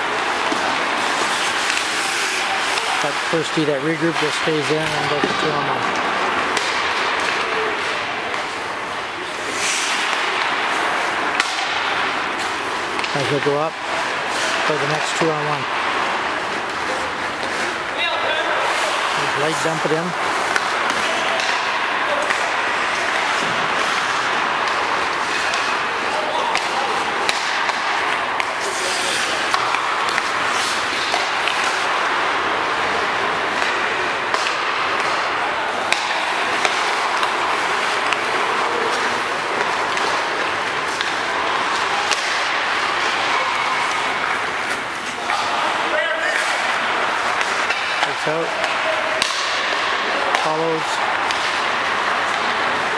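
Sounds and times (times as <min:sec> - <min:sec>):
players' voices: 0:00.0 - 0:52.9
pucks striking the boards: 0:00.0 - 0:52.9
skate blades on ice: 0:00.0 - 0:52.9
sticks and pucks clacking: 0:00.0 - 0:52.9.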